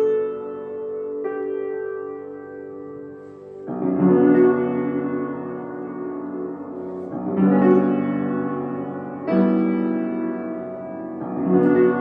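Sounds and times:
upright piano chords: 0.0 - 12.0.

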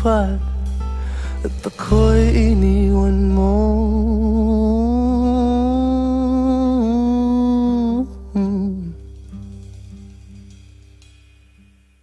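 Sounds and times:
pop song accompaniment: 0.0 - 9.6
man humming with vibrato: 1.4 - 9.1.

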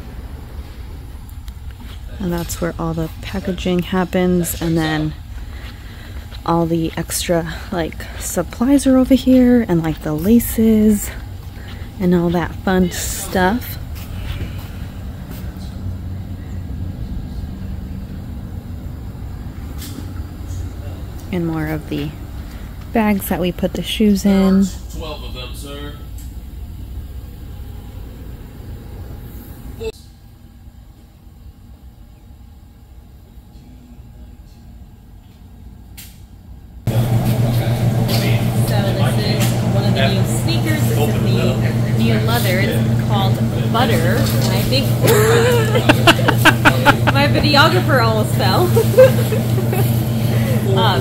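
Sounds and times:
low mechanical hum: 0.0 - 51.0.

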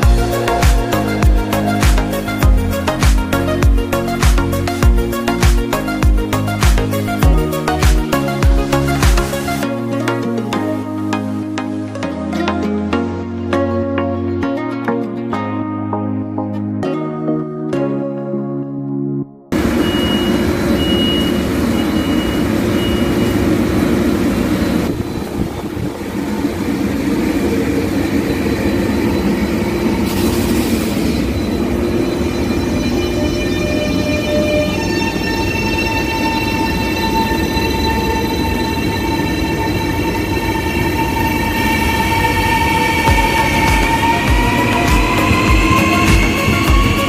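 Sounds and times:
electric train humming: 0.0 - 14.1, 19.5 - 47.0
rising electric whines: 19.6 - 47.0
short high beeps: 19.8 - 23.5.

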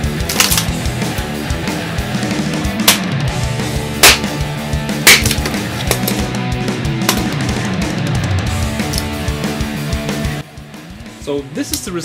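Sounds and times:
background music: 0.0 - 12.0
axe chopping log: 2.8 - 3.1, 4.0 - 4.4, 5.0 - 6.2.

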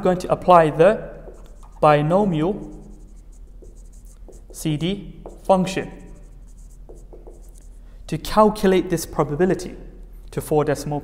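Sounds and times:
marker writing on whiteboard: 0.7 - 8.0.

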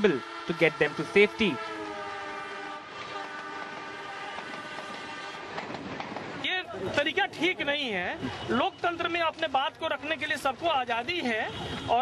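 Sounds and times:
train horn: 0.0 - 5.8
train coaches rumbling past: 0.0 - 9.5.

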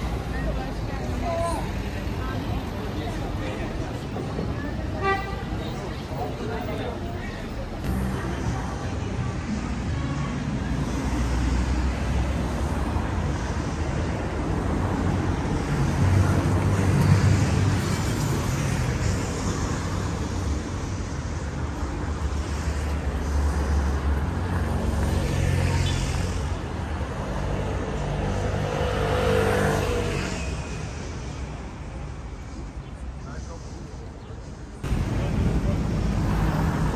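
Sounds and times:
car engines passing: 0.0 - 36.9.

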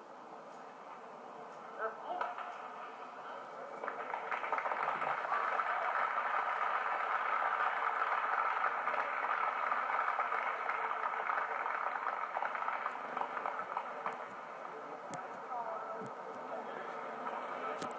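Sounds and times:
audience applause: 3.7 - 14.9.

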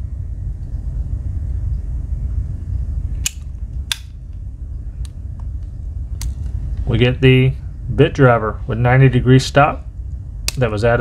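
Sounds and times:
steady low rumble: 0.0 - 11.0.

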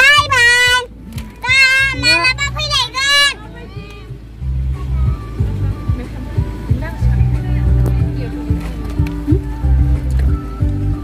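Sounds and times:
child calling out: 0.0 - 3.4
background music with low bass: 0.0 - 11.0.

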